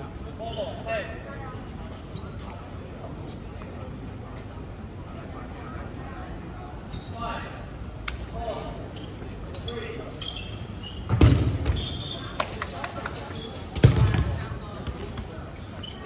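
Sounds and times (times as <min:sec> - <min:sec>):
dodgeball thumps: 0:11.1 - 0:12.0, 0:13.7 - 0:15.3.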